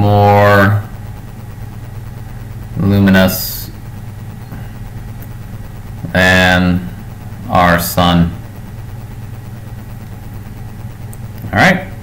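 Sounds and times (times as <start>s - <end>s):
steady low hum: 0.0s - 12.0s
person speaking: 2.7s - 3.8s, 6.0s - 8.5s.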